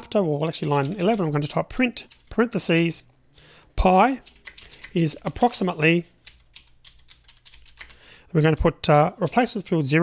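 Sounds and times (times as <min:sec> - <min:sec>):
computer keyboard typing: 0:00.5 - 0:02.9, 0:03.9 - 0:05.6, 0:06.2 - 0:09.9.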